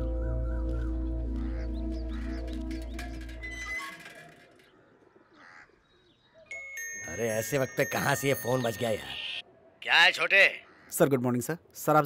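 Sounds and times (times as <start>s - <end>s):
music: 0.0s - 3.5s.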